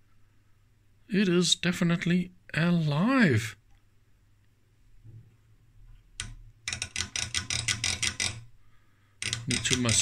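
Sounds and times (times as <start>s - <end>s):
rotary switch clicking: 6.2s - 8.4s, 9.2s - 10.0s.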